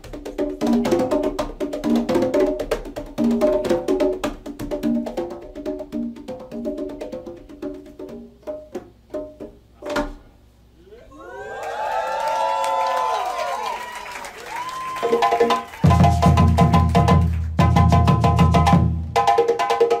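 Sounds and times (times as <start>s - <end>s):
conga drum solo: 0.0s - 10.4s, 14.6s - 20.0s
audience cheering and shouting: 10.9s - 15.9s.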